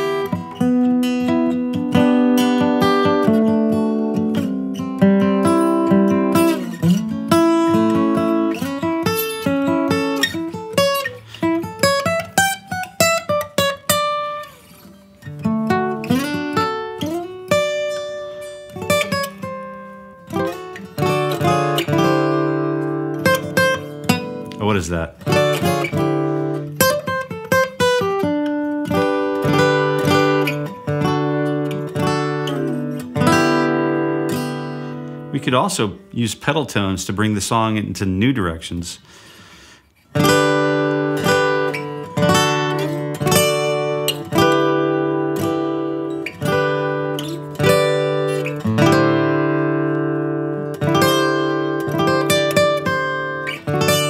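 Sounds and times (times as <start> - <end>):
acoustic guitar played with pick: 0.0 - 54.0.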